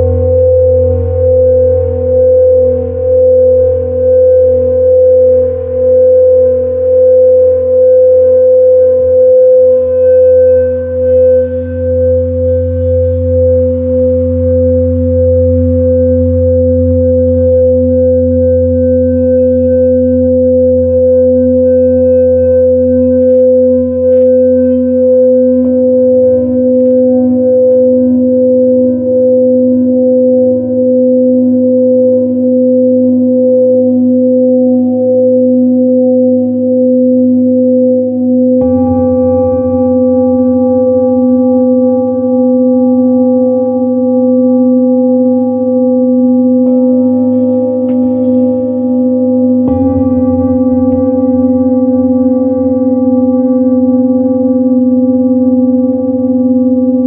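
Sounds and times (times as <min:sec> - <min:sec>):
crickets trilling: 0:00.0 - 0:57.0
singing bowls ringing: 0:00.0 - 0:57.0.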